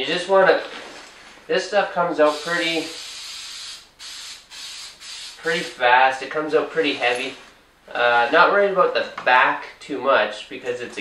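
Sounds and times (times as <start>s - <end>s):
aerosol can spraying: 2.3s - 5.8s.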